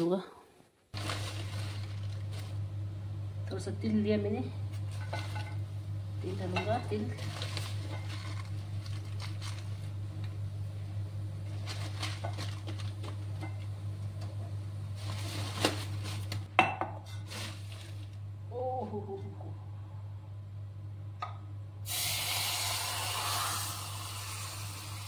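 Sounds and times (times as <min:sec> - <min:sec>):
steady low hum: 0:00.4 - 0:21.9.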